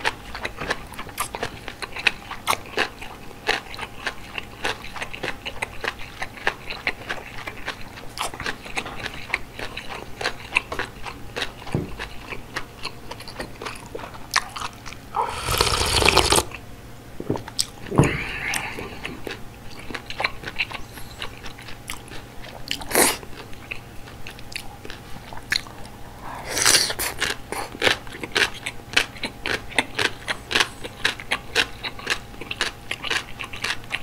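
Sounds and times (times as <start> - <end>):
chewing noodles: 0.0 - 16.6, 17.3 - 34.0
airy mouth sounds: 15.1 - 16.6, 26.2 - 27.8.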